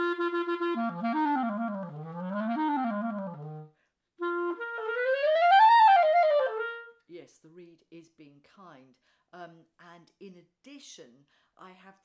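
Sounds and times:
clarinet runs: 0.0 - 6.9.

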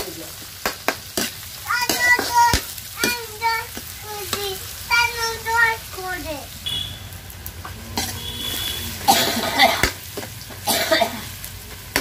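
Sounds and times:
vegetables frying in oil: 0.0 - 12.0
child singing: 1.6 - 6.5
spatula scraping in a wok: 7.6 - 10.3.

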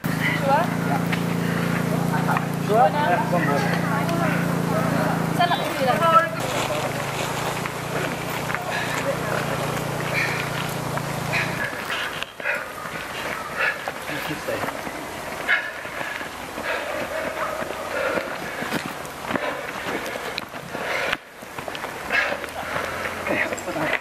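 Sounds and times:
indistinct voices talking and calling: 0.0 - 24.0.

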